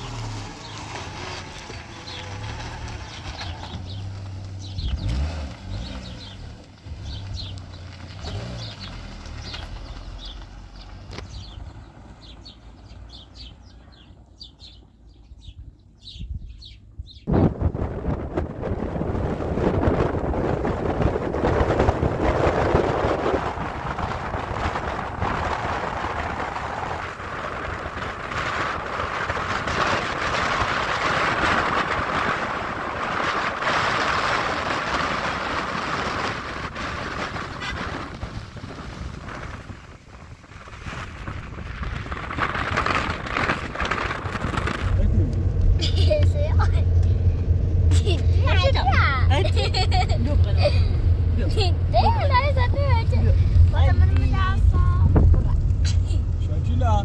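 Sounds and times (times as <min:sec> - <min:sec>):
small birds chirping: 0:00.0 - 0:17.3
car road and wind noise: 0:00.0 - 0:57.0
low hum: 0:39.2 - 0:57.0.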